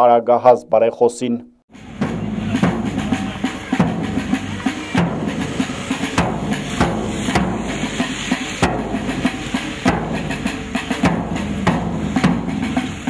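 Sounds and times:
loud drum strokes: 1.7s - 13.0s.

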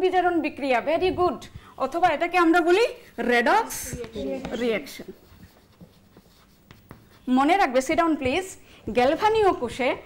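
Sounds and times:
chalk scratching on blackboard: 4.0s - 7.8s.

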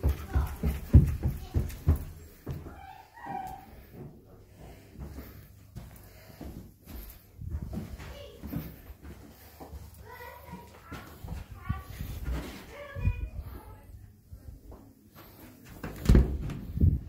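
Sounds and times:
footsteps on carpeted stairs: 0.0s - 13.7s, 14.4s - 17.0s.

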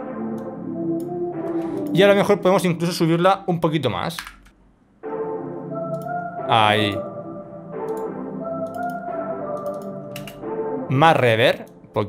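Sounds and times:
dark synth melody with reverb: 0.0s - 2.8s, 5.0s - 12.0s
sustained minor synth chords: 0.0s - 3.7s, 5.0s - 12.0s.

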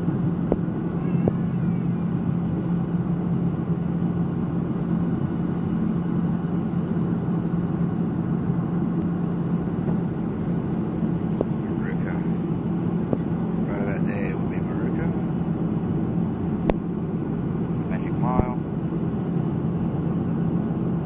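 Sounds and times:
constant low hum: 0.0s - 21.0s
jet cabin engine drone: 0.0s - 21.0s.

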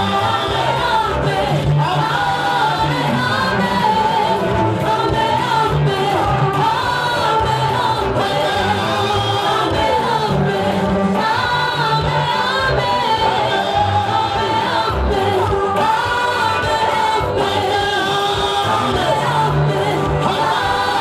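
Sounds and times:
vocal group singing gospel: 0.0s - 21.0s.

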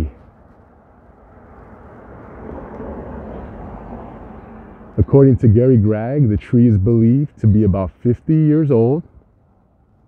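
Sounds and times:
distant passing vehicle: 0.0s - 10.0s.

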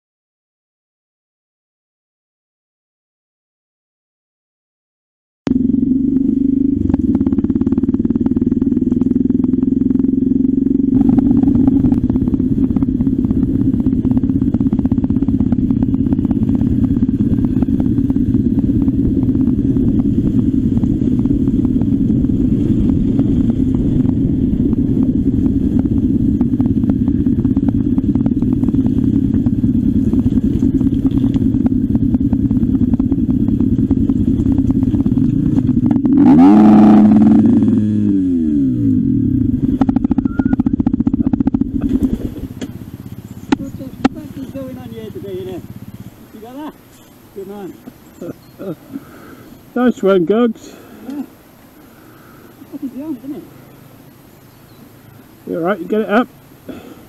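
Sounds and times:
motorcycle engine running: 5.5s - 57.0s.

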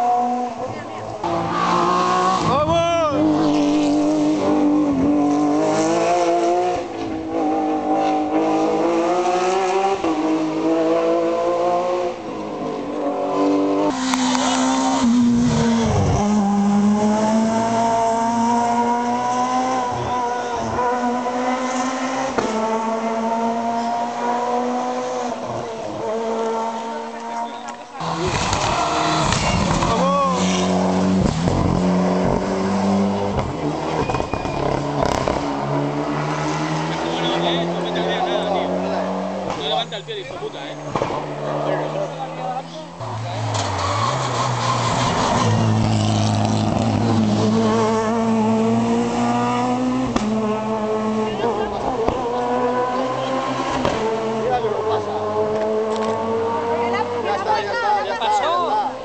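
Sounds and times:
rally car engine accelerating: 0.0s - 59.0s.

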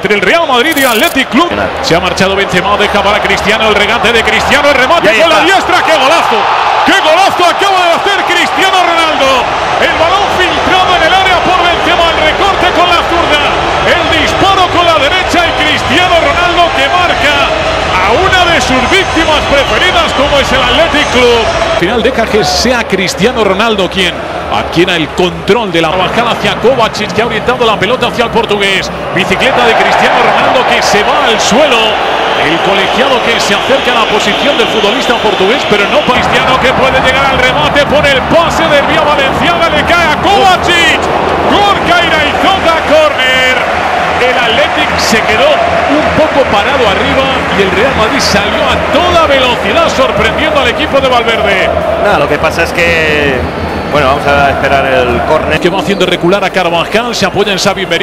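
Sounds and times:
commentator talking: 0.0s - 58.0s
stadium crowd noise: 0.0s - 58.0s.

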